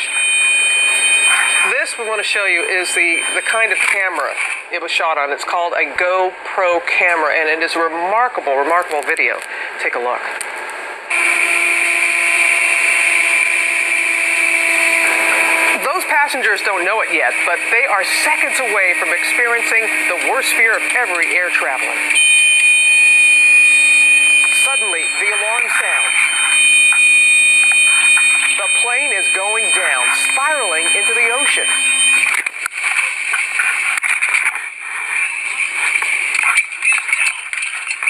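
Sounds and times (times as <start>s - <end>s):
cockpit warning alarm tone: 0.0s - 4.5s, 11.1s - 32.4s
high whine: 0.0s - 4.7s, 11.1s - 32.6s
small plane engine and propeller drone: 15.0s - 22.2s.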